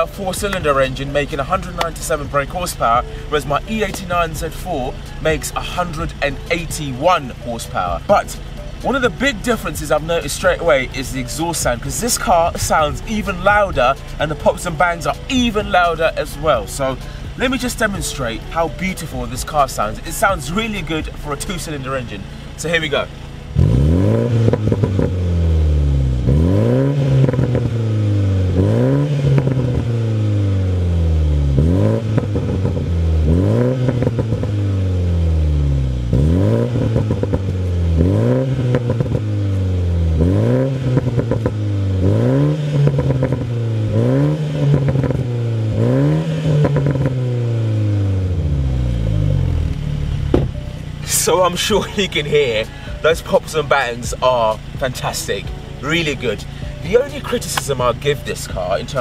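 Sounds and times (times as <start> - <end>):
car engine revving: 0.0 - 59.0
exhaust pops and crackles: 0.0 - 59.0.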